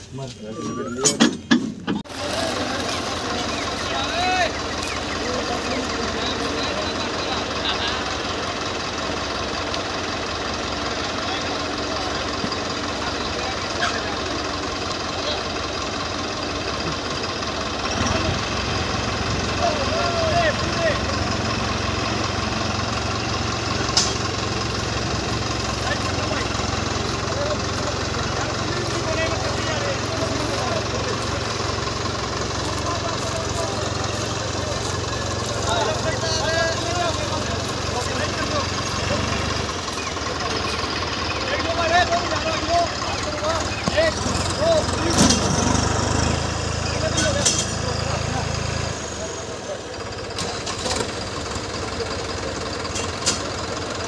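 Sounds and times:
diesel tractor engines running: 0.0 - 54.0
people talking: 0.0 - 54.0.

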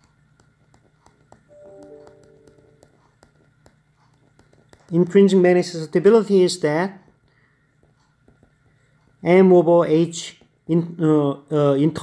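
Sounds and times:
stylus ticking on screen: 0.0 - 5.5
low background hum: 0.0 - 12.0.

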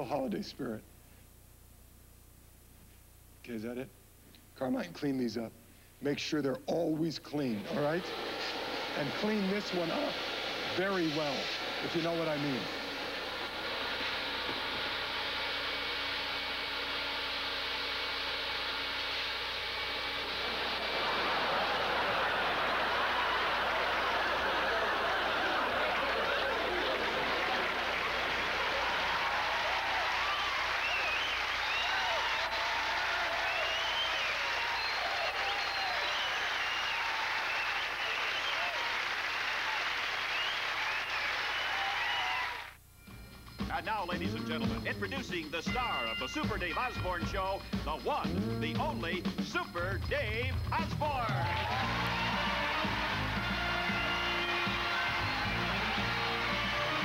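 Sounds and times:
audience laughing and applauding: 7.5 - 42.8, 50.8 - 57.0
vacuum cleaner running: 7.6 - 32.6.

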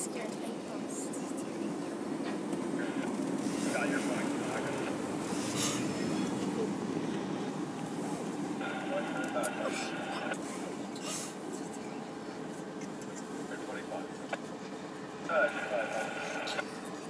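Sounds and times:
distant diesel engine rumble: 0.7 - 16.7
muffled voice: 2.8 - 4.9, 8.6 - 10.7, 12.9 - 14.3, 15.2 - 17.0.

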